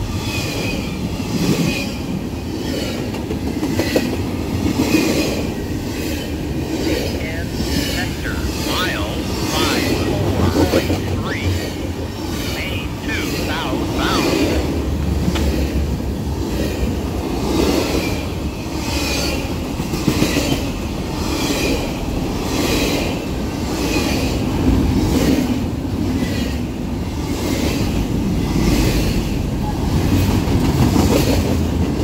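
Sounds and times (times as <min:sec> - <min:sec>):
freight train rumbling past: 0:00.0 - 0:32.0.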